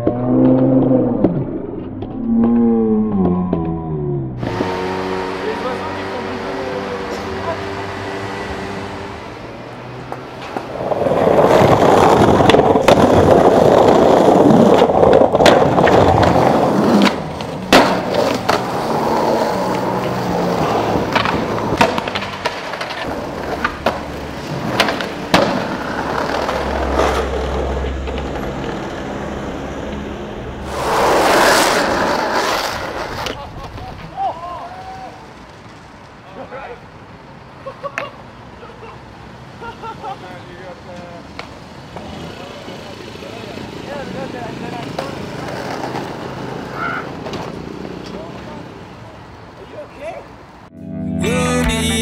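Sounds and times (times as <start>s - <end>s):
skateboard wheels rolling on paving: 4.4s - 37.4s, 39.3s - 50.6s
skateboard clacking: 10.1s - 20.3s, 20.9s - 28.9s.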